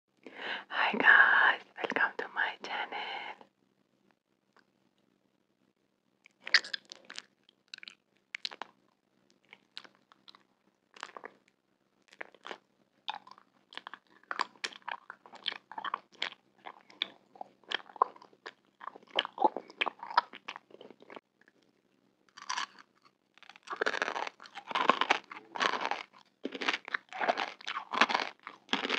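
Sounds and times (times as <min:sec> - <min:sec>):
whispered speech: 0:00.7 - 0:03.4
crunchy candy chewing: 0:06.3 - 0:11.5, 0:12.1 - 0:21.7, 0:22.3 - 0:28.9.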